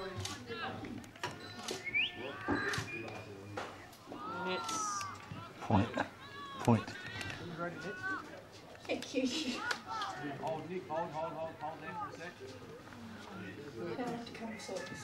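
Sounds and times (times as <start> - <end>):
spectators shouting and yelling: 0.0 - 8.6, 9.5 - 11.0, 13.2 - 15.0.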